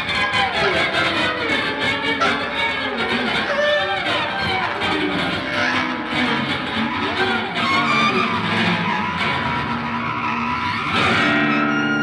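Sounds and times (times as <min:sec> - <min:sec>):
experimental string and clarinet music: 0:00.0 - 0:12.0.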